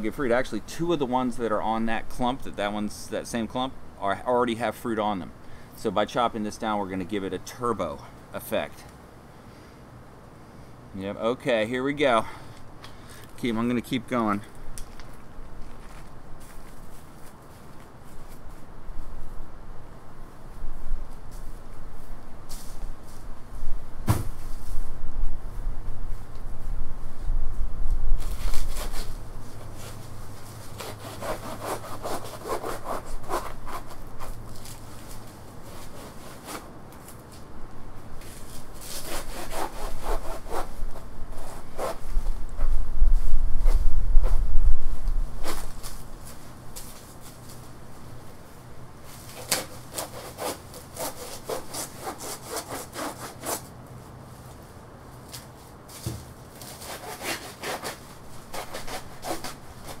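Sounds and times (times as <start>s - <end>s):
saw cutting plant stalk: 30.7s - 36.7s, 38.2s - 40.7s, 49.2s - 53.7s, 56.6s - 60.0s.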